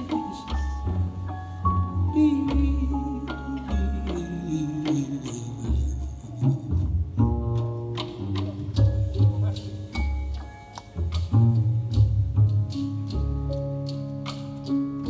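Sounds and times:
double bass notes: 0:00.0 - 0:15.0
grand piano chords: 0:00.0 - 0:15.0.

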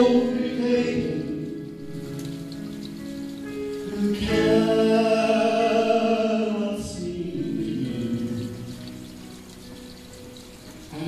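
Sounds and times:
person singing a slow ballad: 0:00.0 - 0:02.2, 0:03.8 - 0:08.8
soft electric keyboard chords: 0:00.0 - 0:11.0.

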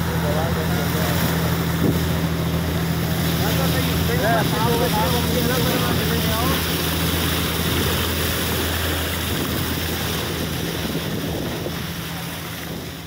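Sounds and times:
boat engine humming: 0:00.0 - 0:13.0
water rushing along hull: 0:00.0 - 0:13.0
wind on microphone: 0:01.4 - 0:13.0.

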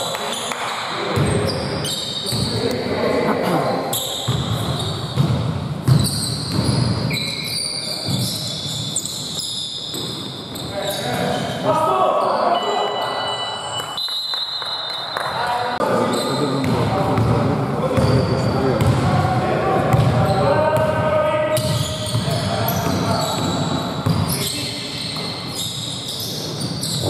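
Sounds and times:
shoe squeaks and knocks: 0:01.2 - 0:02.6, 0:03.9 - 0:11.6, 0:16.0 - 0:16.7, 0:17.9 - 0:19.0, 0:21.5 - 0:27.0.

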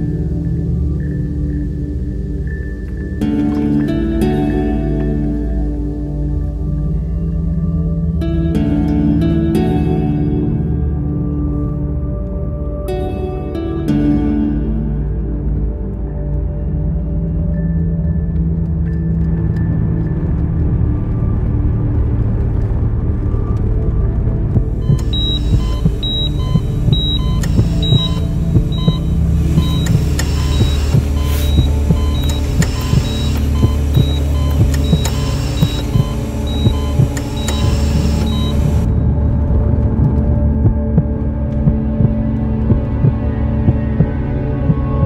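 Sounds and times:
low film score drone: 0:00.0 - 0:45.0
soft pulse: 0:24.6 - 0:45.0
patient monitor beeping: 0:24.8 - 0:38.9.

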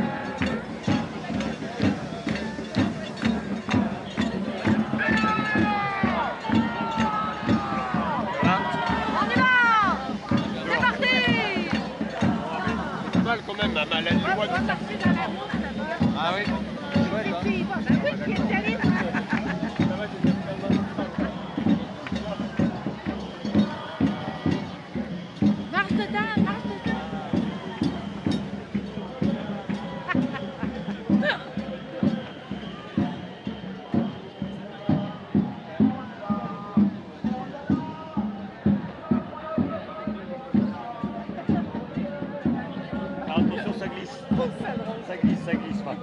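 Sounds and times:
crowd talking: 0:00.0 - 0:46.0
music with steady beat: 0:00.0 - 0:46.0.

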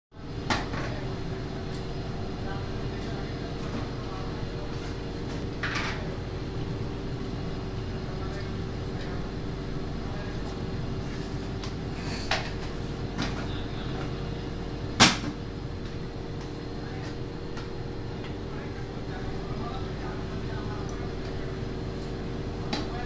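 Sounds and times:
low electrical hum: 0:00.2 - 0:23.0.

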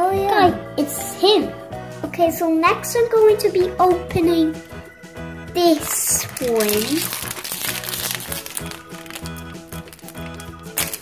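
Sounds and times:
background music: 0:00.0 - 0:11.0
plastic bag crinkling open: 0:05.6 - 0:11.0.

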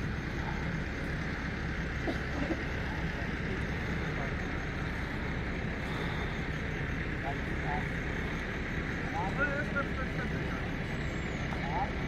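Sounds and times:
faint voices: 0:00.0 - 0:12.0
low background rumble: 0:00.0 - 0:12.0.

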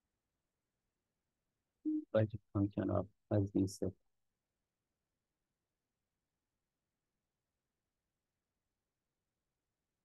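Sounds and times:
man speaking: 0:01.9 - 0:03.9.

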